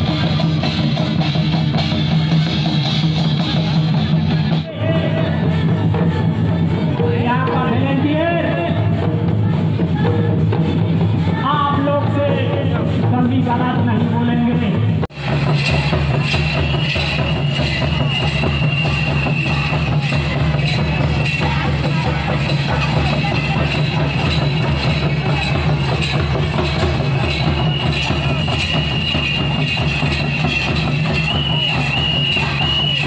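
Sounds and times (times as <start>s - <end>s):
crowd noise: 0.0s - 33.0s
drums beating: 0.0s - 33.0s.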